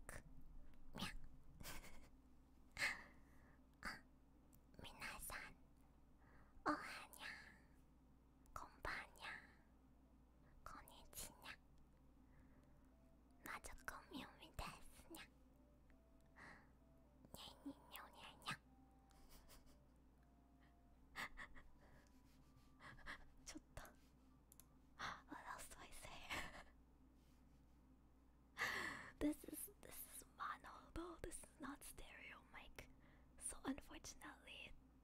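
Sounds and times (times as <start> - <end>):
woman whispering: 0.0 - 2.1, 2.8 - 3.2, 3.8 - 4.1, 4.7 - 5.6, 6.6 - 7.8, 8.5 - 9.7, 10.5 - 11.6, 13.4 - 15.4, 16.4 - 18.7, 20.6 - 22.1, 22.8 - 24.1, 25.0 - 26.8, 29.0 - 34.8
faint steady hum: 0.0 - 35.0.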